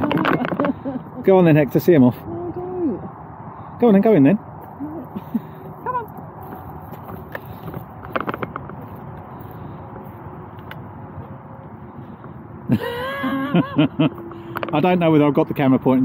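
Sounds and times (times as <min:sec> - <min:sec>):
loose microphone rattling clicks: 0:07.7 - 0:08.9.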